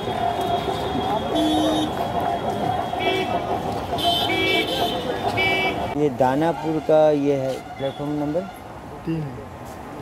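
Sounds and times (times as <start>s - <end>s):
traffic noise: 0.0s - 10.0s
vehicle horns honking: 0.3s - 8.6s.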